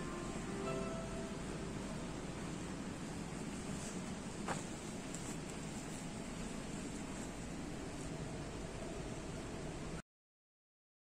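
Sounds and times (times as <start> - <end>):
steady hiss with low rumble: 0.0 - 10.0.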